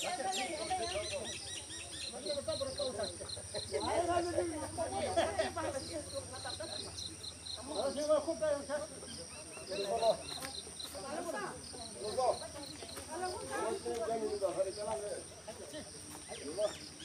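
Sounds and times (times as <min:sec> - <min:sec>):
insect chirping rhythmically: 0:00.0 - 0:17.0.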